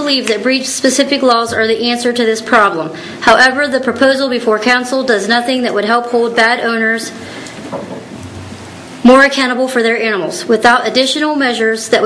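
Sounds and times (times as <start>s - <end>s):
steady hiss-like noise: 0.0s - 12.0s.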